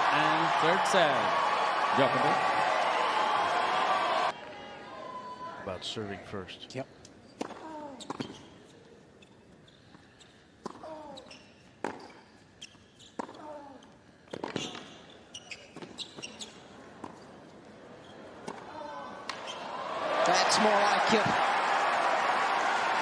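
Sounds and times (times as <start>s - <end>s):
tennis ball bouncing on hard court: 11.8s - 12.3s, 13.2s - 13.5s.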